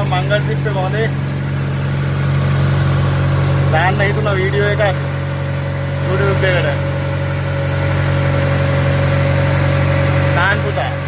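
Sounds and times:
boat engine running: 0.0s - 11.0s.

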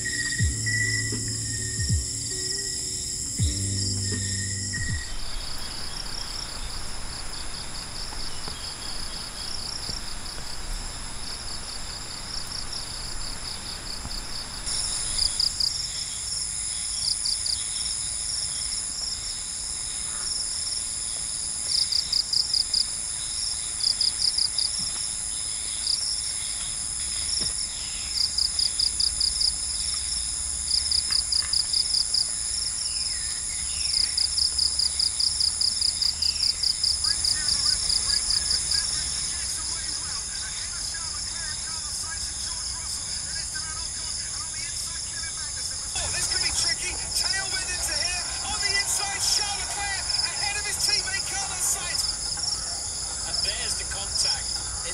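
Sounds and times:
crickets shrilling: 0.0s - 20.9s
rapid pulsed insect chirps: 0.0s - 54.9s.

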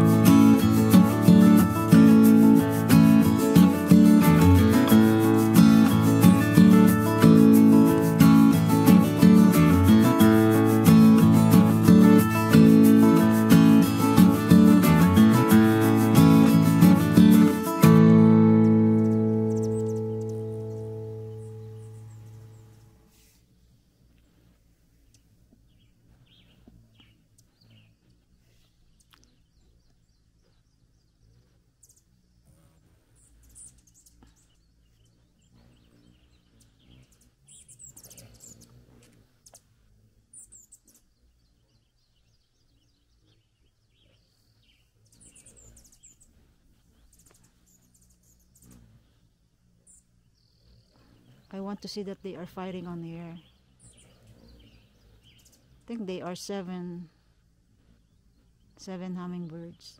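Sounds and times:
strummed guitar chord: 0.0s - 23.0s
hummingbirds chirping: 0.0s - 59.9s
quiet outdoor ambience: 0.0s - 59.9s.

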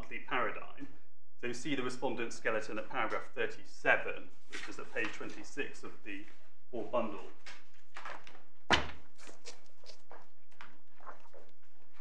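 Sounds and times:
paper clicks and rustles: 7.5s - 12.0s.

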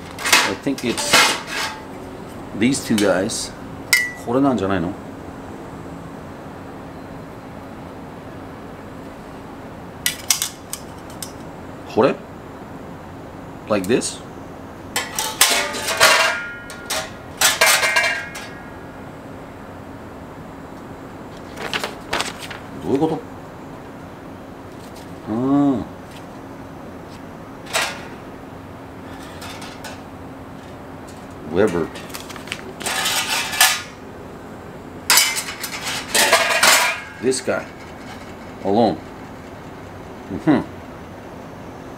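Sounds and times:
metal grill parts clinking: 0.0s - 1.9s, 15.0s - 18.7s, 27.6s - 28.2s, 29.1s - 30.0s, 30.6s - 34.0s, 35.1s - 38.6s
metal rattling and scraping: 0.0s - 1.9s, 29.1s - 30.0s, 30.6s - 34.0s, 35.1s - 39.5s.

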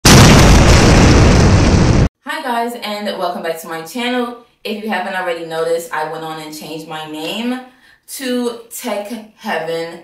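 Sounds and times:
harsh rush of noise: 0.0s - 2.1s.

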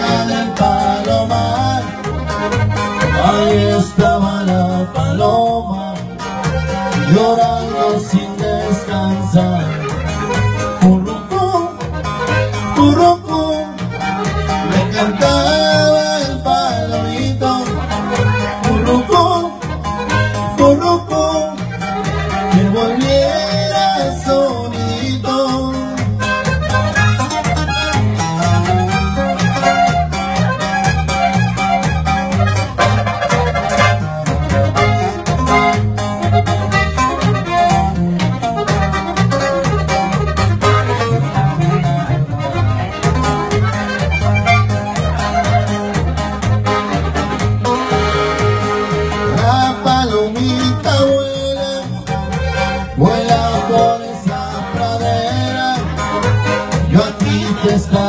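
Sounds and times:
button accordion melody: 0.0s - 58.0s
rhythmic off-beat strokes: 0.0s - 58.0s
upright bass plucking: 0.0s - 58.0s.

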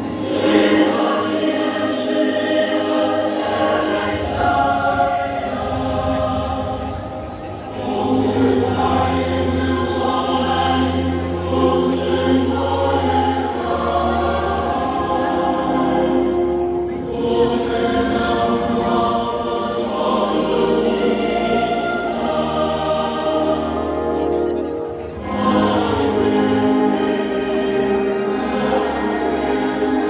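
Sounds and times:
choir singing held chords: 0.0s - 30.0s.

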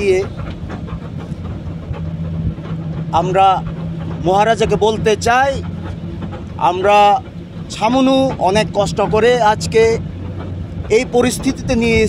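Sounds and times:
engine idling: 0.0s - 12.0s
man speaking: 3.1s - 5.6s, 6.6s - 10.0s, 10.9s - 12.0s.

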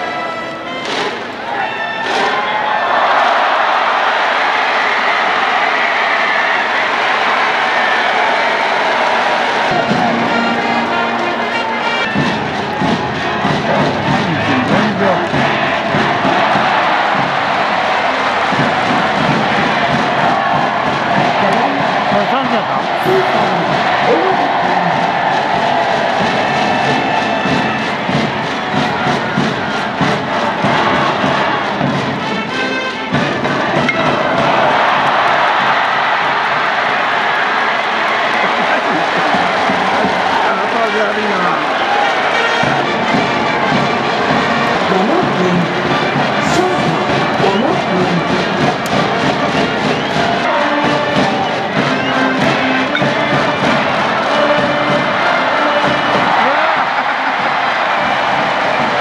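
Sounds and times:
crowd cheering: 0.0s - 59.0s
band music: 8.1s - 36.2s, 37.3s - 59.0s
mix of voices: 9.6s - 36.2s, 38.1s - 59.0s.

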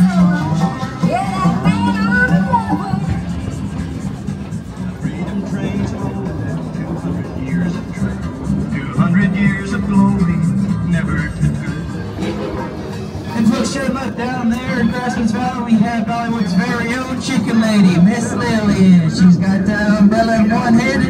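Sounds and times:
music playing: 0.0s - 21.0s
voices: 0.0s - 21.0s.

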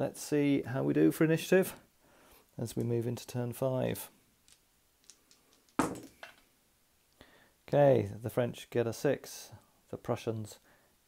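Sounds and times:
dice rolling on a table: 4.5s - 6.4s.

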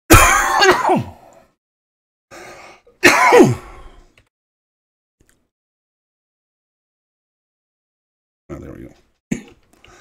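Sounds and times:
man coughing loudly: 0.1s - 1.2s, 3.0s - 3.7s.

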